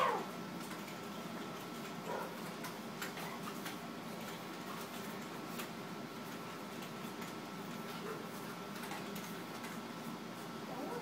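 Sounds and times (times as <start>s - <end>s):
dog whining: 0.0s - 0.3s, 10.7s - 11.0s
dog yelping: 0.0s - 0.3s, 10.7s - 11.0s.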